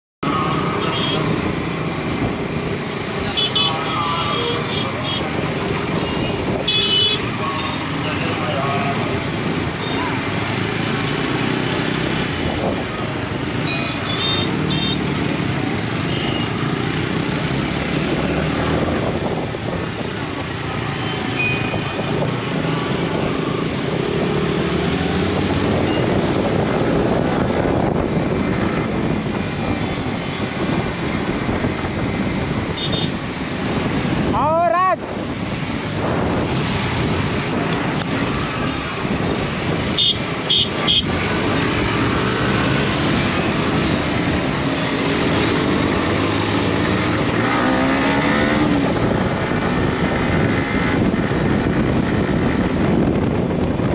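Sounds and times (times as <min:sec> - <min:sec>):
motorcycle engines in traffic: 0:00.2 - 0:53.9
road noise: 0:00.2 - 0:53.9.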